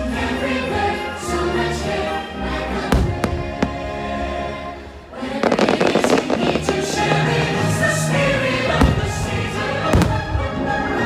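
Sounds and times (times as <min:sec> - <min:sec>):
choir singing over music: 0:00.0 - 0:11.0
fireworks crackling: 0:03.0 - 0:08.1.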